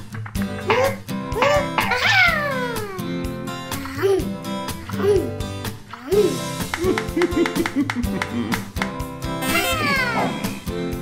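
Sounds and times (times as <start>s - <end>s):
light guitar background music: 0.0s - 11.0s
cartoon sound gliding downward: 9.4s - 10.3s.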